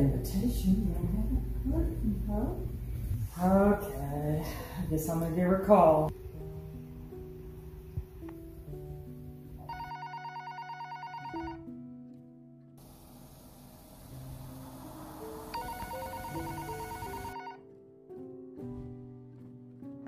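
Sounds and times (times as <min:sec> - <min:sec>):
slow background music: 0:00.0 - 0:04.4, 0:05.5 - 0:20.0
telephone ringing trill: 0:09.7 - 0:11.6, 0:15.5 - 0:17.6.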